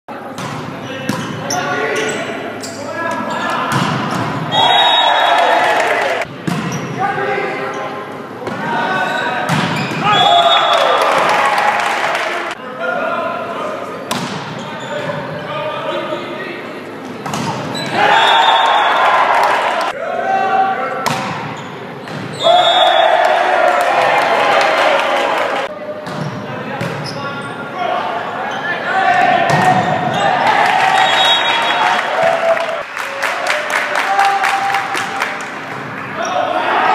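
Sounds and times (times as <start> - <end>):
players shouting: 1.5 - 6.3, 8.6 - 13.4, 17.7 - 21.1, 22.3 - 25.7, 27.7 - 32.8, 36.1 - 36.9.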